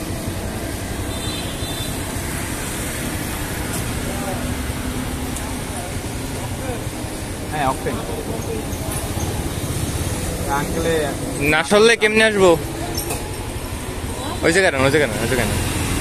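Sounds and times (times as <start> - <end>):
engine and road traffic rumble: 0.0 - 16.0.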